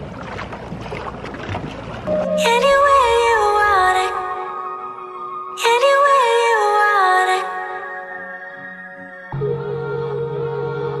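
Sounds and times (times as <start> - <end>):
water noise: 0.0 - 8.0
wind: 0.0 - 11.0.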